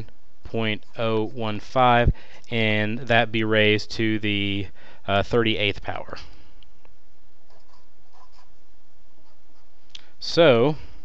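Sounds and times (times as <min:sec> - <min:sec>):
low background hum: 0:00.0 - 0:11.0
marker pen scratching whiteboard: 0:00.5 - 0:01.7, 0:07.5 - 0:08.6, 0:09.2 - 0:09.8.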